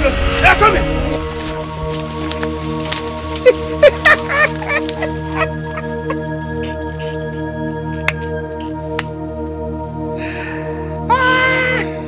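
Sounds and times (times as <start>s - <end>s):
background music: 0.0s - 12.0s
man cackling with laughter: 3.4s - 7.2s.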